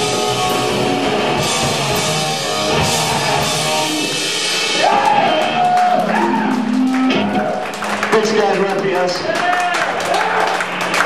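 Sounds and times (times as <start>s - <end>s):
live punk band: 0.0s - 11.0s
audience shouting: 4.7s - 8.0s, 9.3s - 11.0s
audience clapping: 4.7s - 11.0s.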